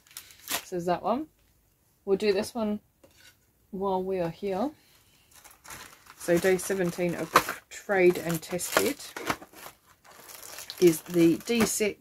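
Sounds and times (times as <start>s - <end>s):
packing crinkling: 0.0s - 0.7s, 5.3s - 11.9s
cardboard tearing: 8.2s - 11.7s.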